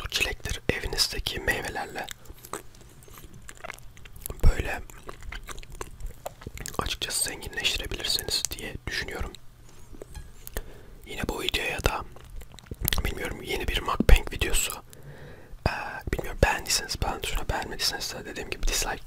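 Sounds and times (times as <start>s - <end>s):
wet mouth clicks: 1.4s - 8.6s, 11.4s - 13.4s
close chewing: 1.5s - 8.6s, 11.5s - 13.3s.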